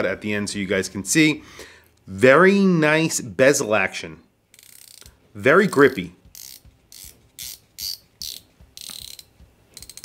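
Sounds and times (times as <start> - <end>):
watch bezel ratcheting clicks: 6.4 - 10.0.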